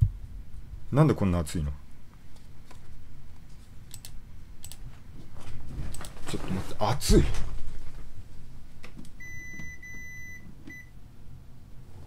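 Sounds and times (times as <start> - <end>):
air conditioner beeps: 9.2 - 11.0.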